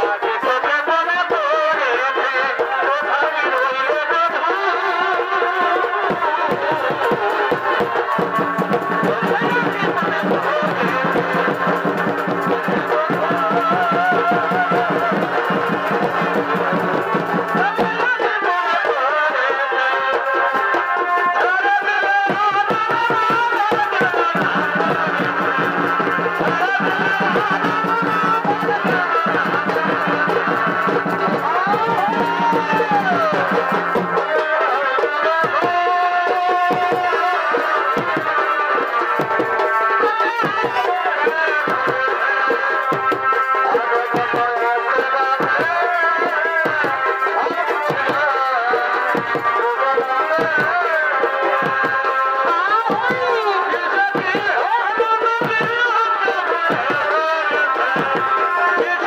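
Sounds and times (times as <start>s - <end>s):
fast dense drumming: 5.0s - 59.0s.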